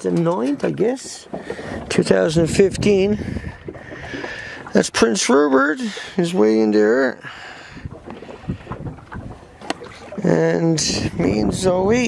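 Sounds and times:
boat running through water: 0.0s - 12.0s
wind buffeting microphone: 0.6s - 5.1s, 7.6s - 12.0s.

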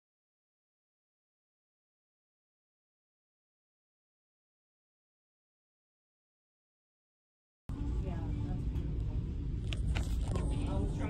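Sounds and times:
steady low rumble: 7.7s - 11.0s.

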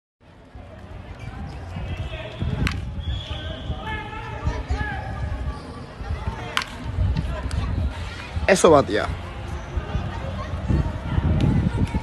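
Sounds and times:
wind rumble on microphone: 0.3s - 12.0s
people talking: 0.6s - 12.0s.

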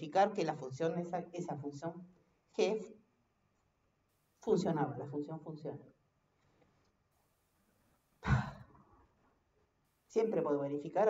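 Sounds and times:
person sighing: 8.2s - 8.8s.

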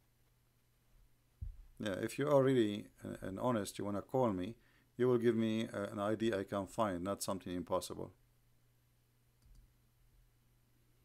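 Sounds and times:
low steady hum: 0.0s - 11.0s
faint click: 9.4s - 9.7s.

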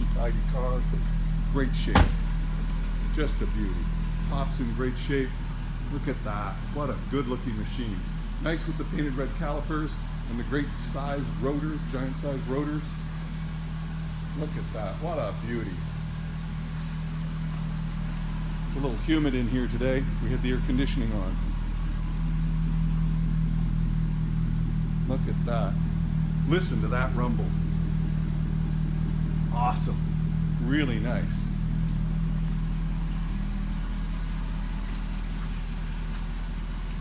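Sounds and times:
car engine idling: 0.0s - 37.0s.

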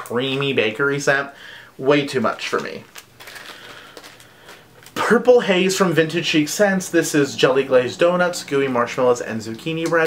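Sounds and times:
plastic packaging crinkling: 2.2s - 5.2s.

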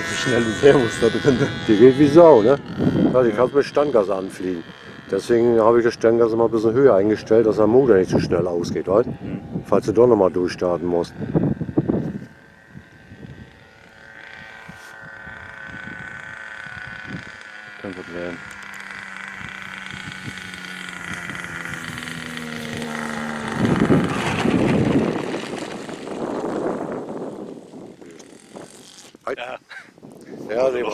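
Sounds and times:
model plane engine humming: 0.0s - 30.9s
plane passing rush: 0.0s - 30.9s.

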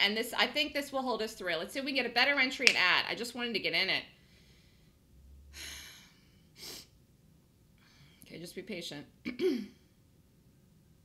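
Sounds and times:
woman clearing her throat: 9.3s - 9.8s.

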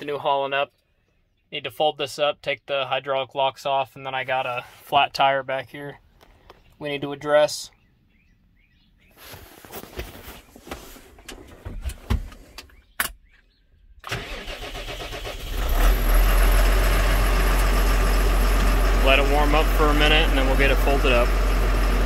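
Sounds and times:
diesel engine starting and idling: 14.0s - 22.0s.

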